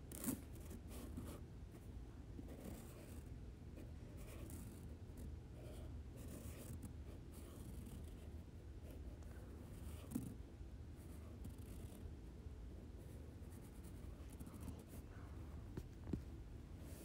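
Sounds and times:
scratching and rustling handling: 13.0 - 17.0.

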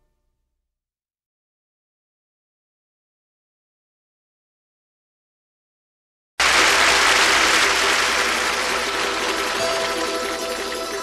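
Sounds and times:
audience applauding: 6.4 - 11.0.

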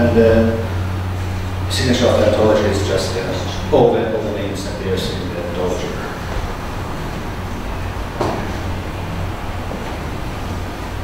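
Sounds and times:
low rumble and hiss of room noise: 0.0 - 11.0.

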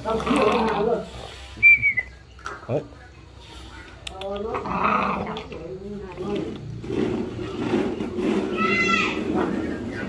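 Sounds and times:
puppy growling: 0.1 - 1.0, 4.2 - 5.6
kibble clicks: 4.0 - 4.5.

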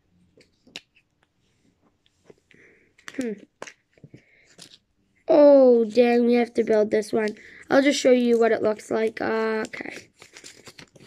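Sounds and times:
plastic capsule clicks: 3.0 - 3.8
foil wrapper crinkling: 9.5 - 11.0.

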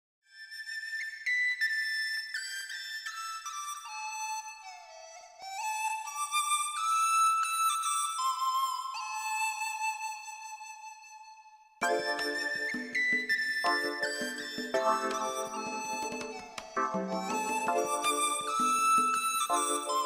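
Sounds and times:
solo flute melody: 0.4 - 20.0.

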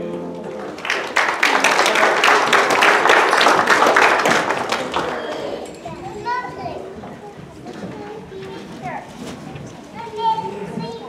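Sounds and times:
crowd applauding: 0.4 - 5.9
child's voice: 5.8 - 11.0.

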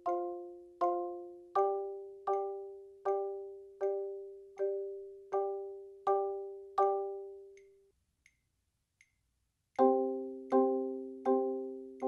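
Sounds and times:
metronome clicks: 0.0 - 12.0.

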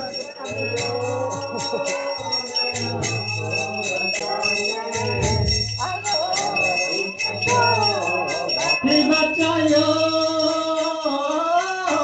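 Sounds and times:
devotional singing and music: 0.0 - 12.0
hand bell rung rapidly: 0.0 - 12.0.

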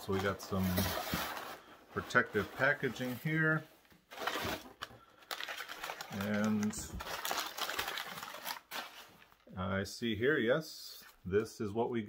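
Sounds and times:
packing material rustling and crinkling: 0.0 - 9.5.

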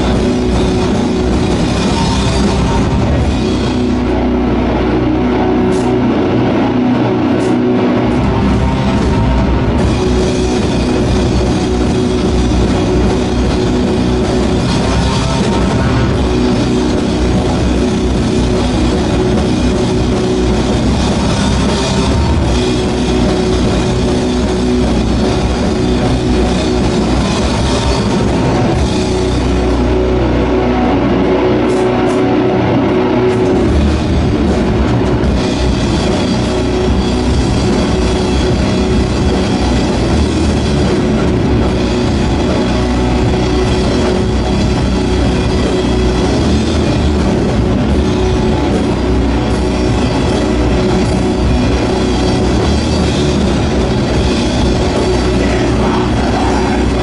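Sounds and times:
bass guitar: 0.0 - 57.0
drum kit: 0.0 - 57.0
electric guitars: 0.0 - 57.0
heavy metal band playing: 0.0 - 57.0.

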